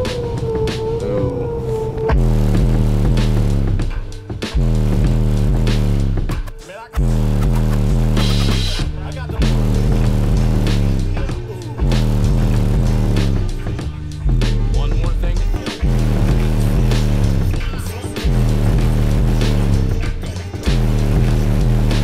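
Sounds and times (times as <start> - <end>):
bass-heavy music through car subwoofers: 0.0 - 22.0.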